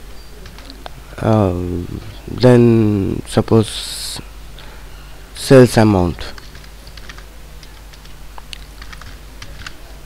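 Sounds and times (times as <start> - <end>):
low steady hum: 0.0 - 10.0
keyboard keys clicking: 6.3 - 9.8.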